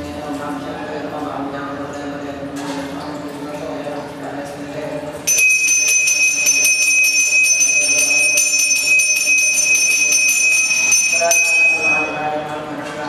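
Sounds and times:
hand bell ringing rapidly: 5.3s - 12.3s.

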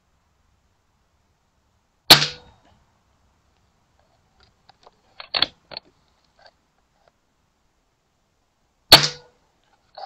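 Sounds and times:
air rifle shot: 2.1s - 2.5s, 8.9s - 9.3s.

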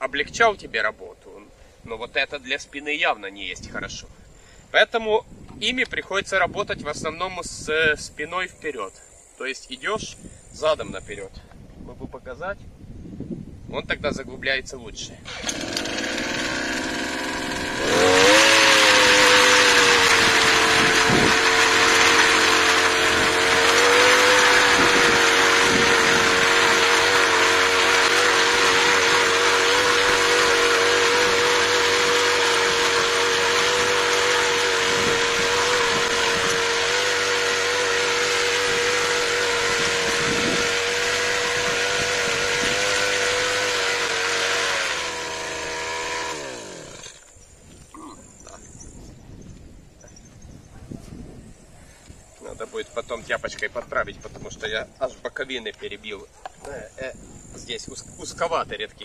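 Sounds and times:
brush cutter engine revving: 15.2s - 47.4s
tines churning dry soil: 15.2s - 47.4s.

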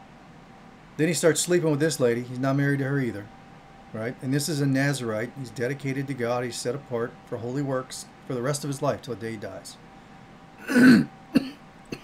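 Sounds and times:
man coughing: 10.6s - 12.0s.

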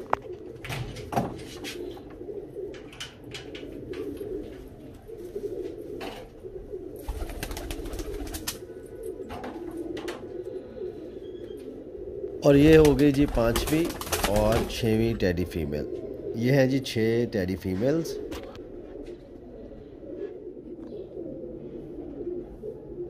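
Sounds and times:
pigeons cooing: 0.0s - 23.0s
wings fluttering: 2.7s - 10.4s, 12.5s - 15.1s.

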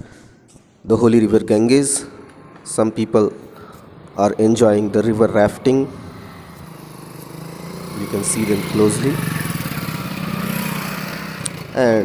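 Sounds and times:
small engine running: 5.9s - 12.0s.

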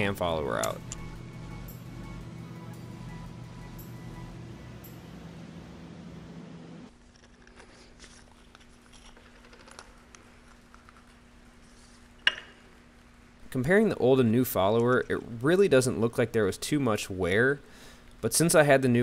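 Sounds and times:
soft background music: 0.0s - 6.0s
room hum: 0.0s - 19.0s.

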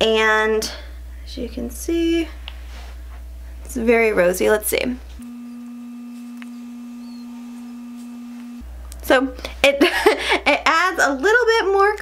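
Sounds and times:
steady low electronic tone: 5.2s - 8.9s.

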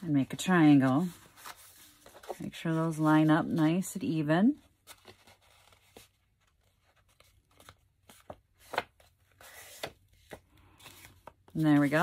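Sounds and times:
paper crackling as it is folded: 0.4s - 3.8s, 4.7s - 12.0s
paper rustle: 0.4s - 3.8s, 4.6s - 12.0s.

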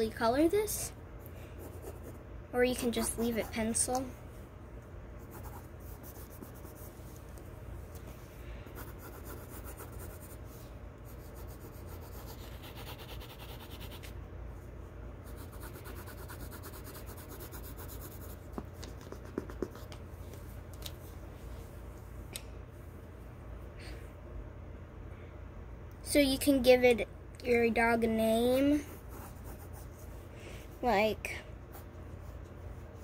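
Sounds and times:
pencil scratching on paper: 1.6s - 2.2s, 2.8s - 3.8s, 5.2s - 6.9s, 8.7s - 10.4s, 11.1s - 14.1s, 15.2s - 19.9s, 28.8s - 30.1s.

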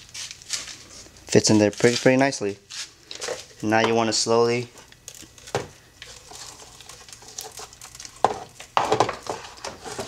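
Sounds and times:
plastic rustling: 0.0s - 3.8s, 4.5s - 10.0s.

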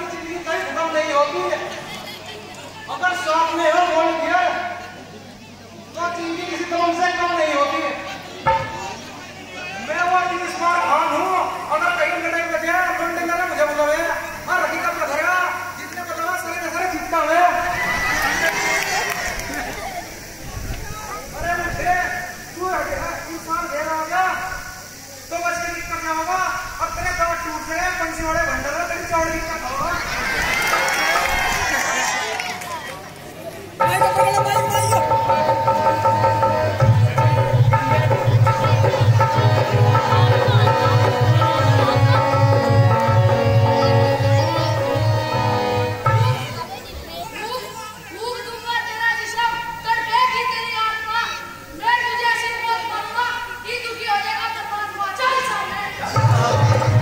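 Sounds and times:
people talking and calling out: 0.0s - 57.0s
high-pitched voices chattering: 32.3s - 57.0s
instrumental music: 33.8s - 46.7s.

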